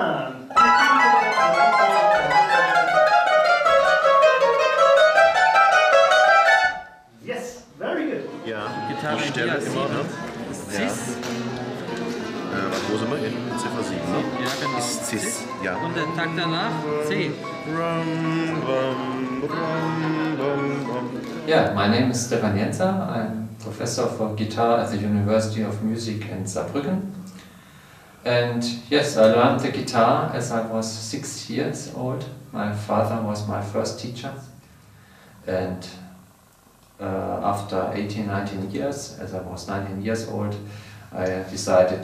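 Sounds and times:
mandolin and guitar ensemble: 0:00.0 - 0:07.0, 0:07.8 - 0:23.3.

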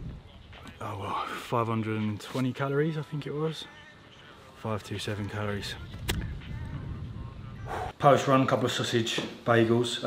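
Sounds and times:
man breathing hard: 0:07.6 - 0:08.0.

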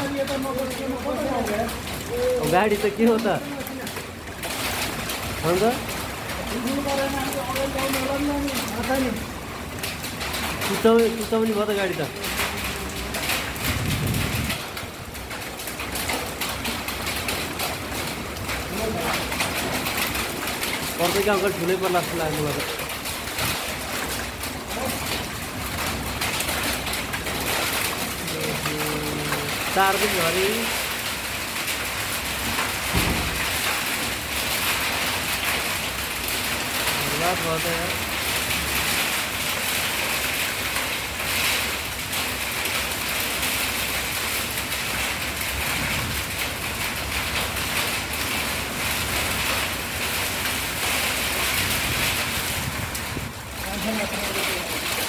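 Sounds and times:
heavy rain downpour: 0:00.0 - 0:55.0
wind rumbling and gusting: 0:03.9 - 0:28.8, 0:45.2 - 0:55.0.

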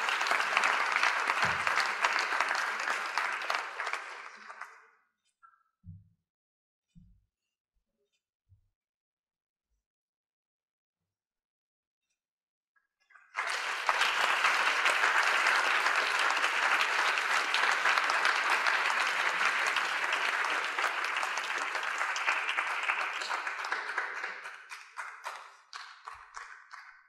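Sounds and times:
audience applauding: 0:00.0 - 0:04.9, 0:13.3 - 0:27.0.

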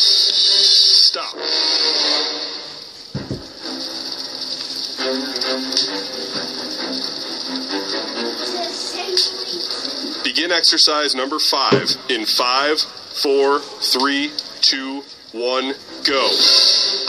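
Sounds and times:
quiet background music: 0:00.0 - 0:17.0
loud upbeat music: 0:01.2 - 0:10.8, 0:11.5 - 0:14.4, 0:15.4 - 0:17.0
low thud: 0:03.1 - 0:03.6, 0:11.7 - 0:12.2
voices: 0:08.1 - 0:16.5.

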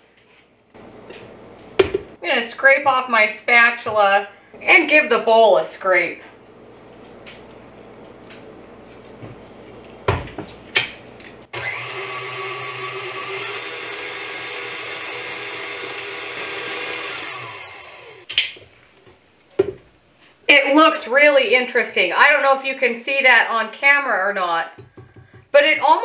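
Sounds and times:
stand mixer motor whir: 0:11.5 - 0:18.3.

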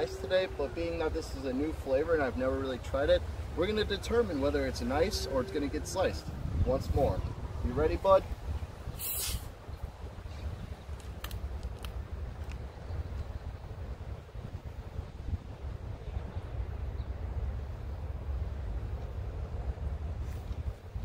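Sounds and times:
wind rumbling on microphone: 0:00.0 - 0:21.0
soda bottle opening hiss: 0:09.0 - 0:09.5.

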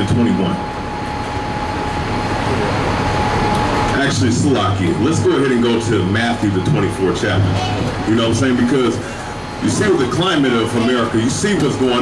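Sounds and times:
heavy traffic rumble: 0:00.0 - 0:12.0.

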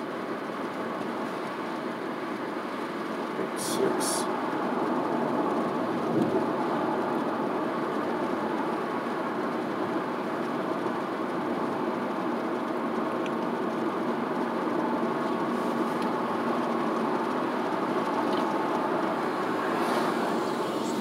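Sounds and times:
car road and engine noise: 0:00.0 - 0:21.0.

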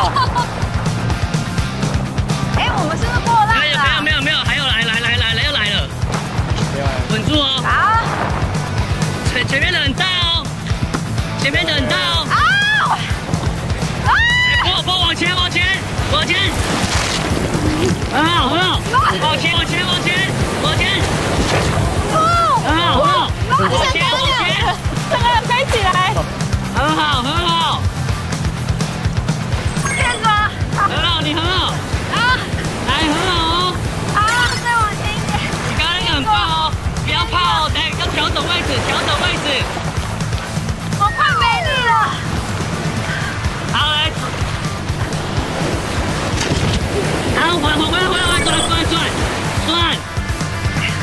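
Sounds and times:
background music: 0:00.0 - 0:51.0
surf rushing around kayak: 0:00.0 - 0:51.0.

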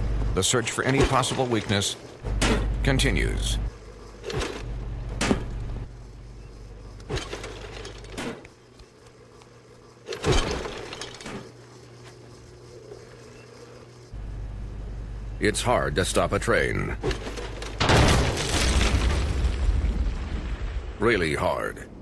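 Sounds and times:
sharp knocks and crashes: 0:00.8 - 0:02.8, 0:04.2 - 0:05.6, 0:10.1 - 0:11.6, 0:17.0 - 0:19.6.

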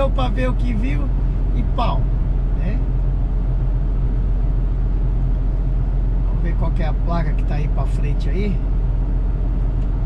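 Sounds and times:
low engine drone: 0:00.0 - 0:10.0
road noise inside truck cab: 0:00.0 - 0:10.0.

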